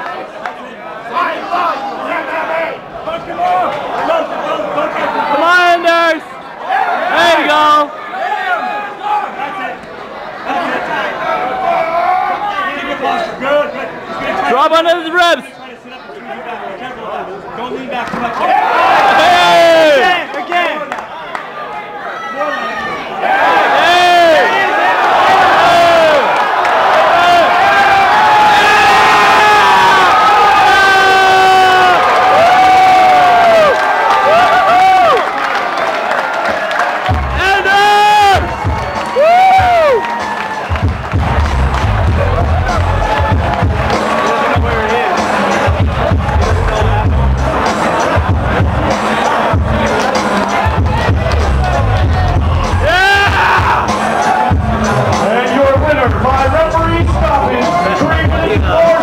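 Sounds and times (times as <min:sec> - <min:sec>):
arena crowd cheering and screaming: 0:00.0 - 0:16.7, 0:18.2 - 0:59.0
loud music with pounding bass: 0:37.1 - 0:37.4, 0:40.7 - 0:59.0.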